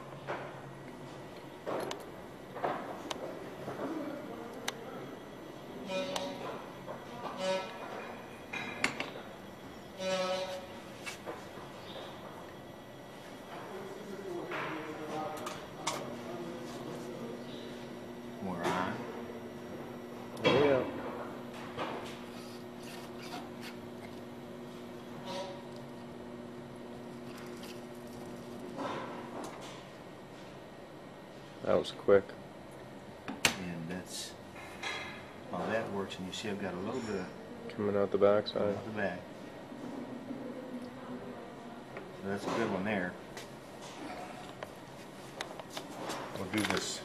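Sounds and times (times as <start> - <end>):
soldering unit humming: 0.0 - 31.3
short squeaks: 7.2 - 8.2, 10.0 - 10.8.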